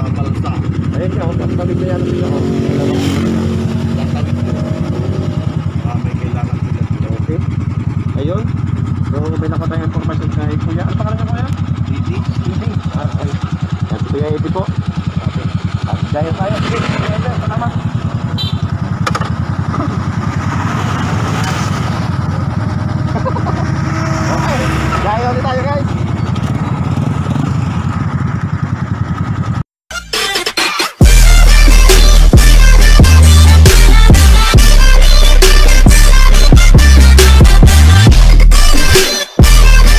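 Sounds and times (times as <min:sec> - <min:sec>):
voices talking: 0:00.0 - 0:18.8, 0:21.2 - 0:27.1
motorcycle engine idling: 0:00.0 - 0:29.6.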